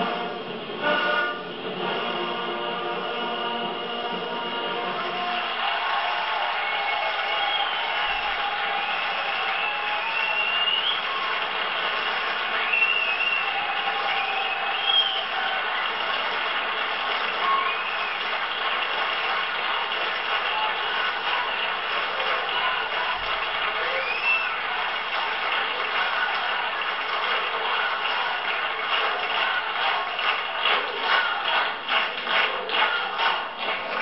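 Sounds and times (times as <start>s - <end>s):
audience applause: 0.0s - 34.0s
rhythmic clapping: 0.0s - 34.0s
whistles: 6.6s - 11.5s, 12.4s - 15.6s, 17.3s - 18.4s, 23.8s - 24.8s.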